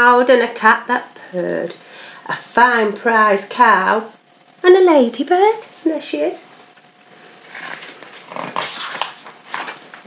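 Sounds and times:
paper page rustling: 7.5s - 10.0s.

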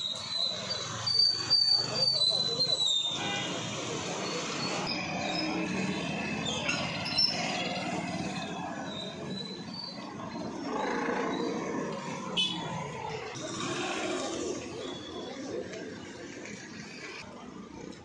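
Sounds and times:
motorcycles and scooters passing: 3.8s - 17.4s.

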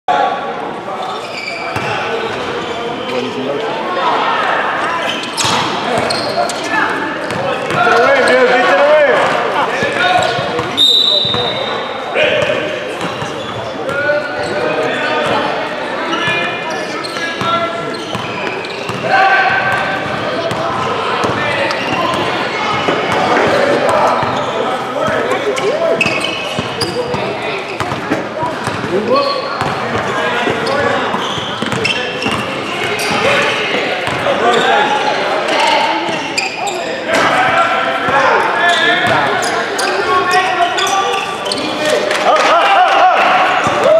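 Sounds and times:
people talking in echoing gym: 0.1s - 43.9s
basketball bouncing on hardwood court: 28.6s - 28.9s, 29.6s - 30.1s.

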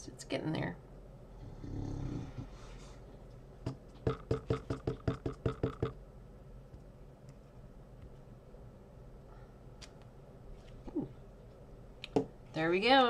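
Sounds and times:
stamp tapping on ink pad: 4.1s - 6.0s.

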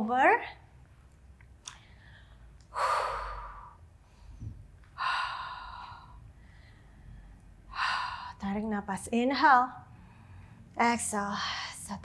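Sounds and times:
woman breathing: 1.7s - 8.5s, 9.8s - 12.0s.

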